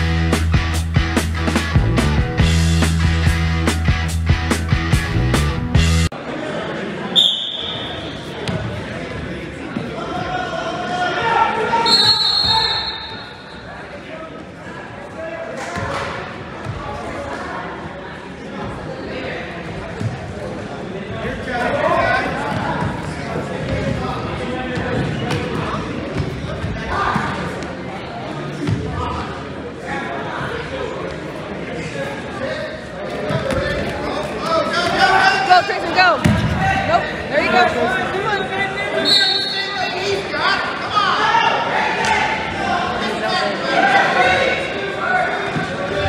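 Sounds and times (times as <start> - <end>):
spectators talking and calling out: 6.0 - 46.0
people calling out in a gym: 7.1 - 8.4, 9.6 - 14.3, 33.6 - 46.0.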